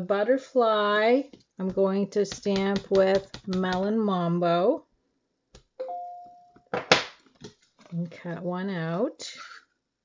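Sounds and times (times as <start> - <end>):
two-note chime: 5.8 - 6.6.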